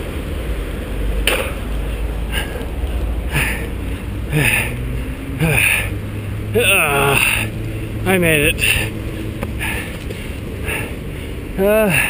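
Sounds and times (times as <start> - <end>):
steady low rumble: 0.0 - 11.9
person groaning: 5.4 - 5.9, 6.5 - 7.5, 11.6 - 12.0
short breaths: 8.6 - 12.0.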